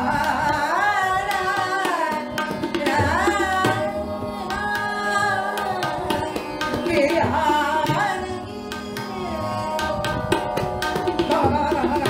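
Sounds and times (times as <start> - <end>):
light tabla strokes: 0.0 - 12.0.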